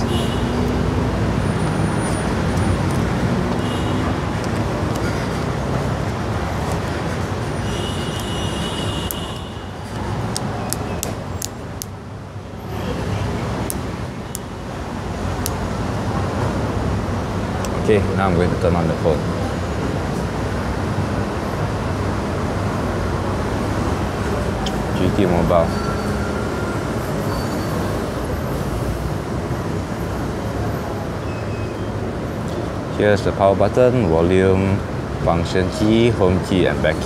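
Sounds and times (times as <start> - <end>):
road traffic noise: 0.0 - 37.0.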